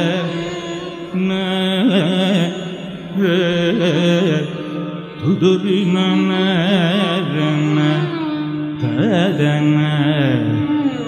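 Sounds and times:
man singing with ornaments: 0.0s - 11.0s.

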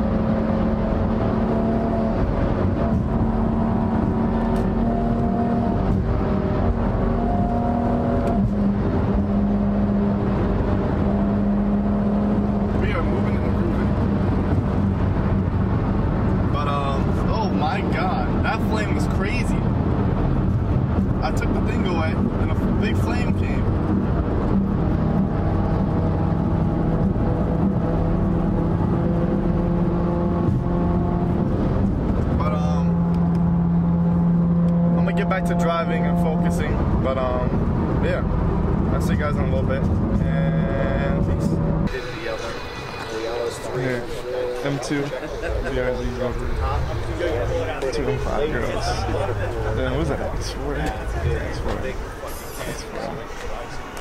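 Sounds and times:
car engine drone: 0.0s - 54.0s
road noise inside car: 0.0s - 54.0s.

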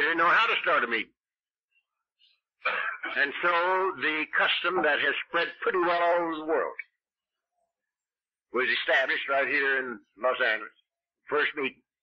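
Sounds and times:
elderly man speaking on cassette: 0.0s - 1.2s, 2.7s - 7.0s, 8.5s - 12.0s.

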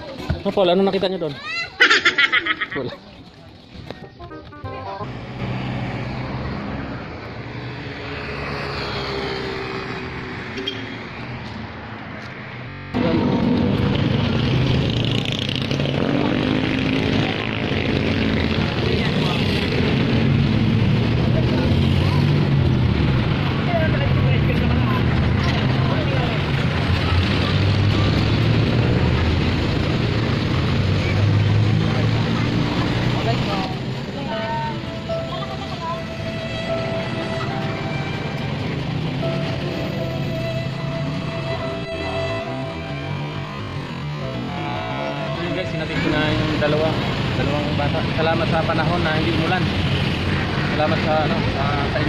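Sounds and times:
voices talking: 0.0s - 5.4s, 30.8s - 40.3s, 41.0s - 52.0s
street and vehicle rumble: 0.0s - 52.0s
background music with held notes: 4.1s - 5.1s, 34.5s - 46.8s.

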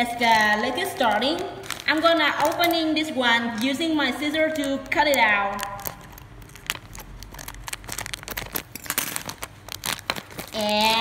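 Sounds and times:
plastic crinkling: 0.0s - 11.0s
scissors cutting plastic bag: 0.0s - 11.0s.

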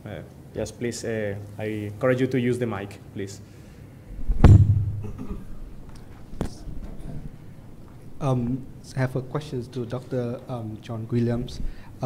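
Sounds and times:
microphone handling thump: 4.2s - 5.3s.

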